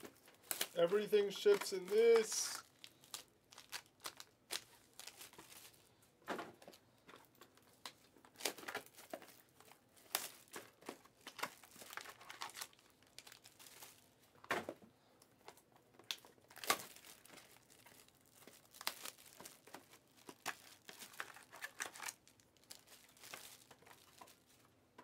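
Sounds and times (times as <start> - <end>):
card wrappers crinkling and tearing: 0.0 - 5.9, 6.6 - 14.2, 15.4 - 25.0.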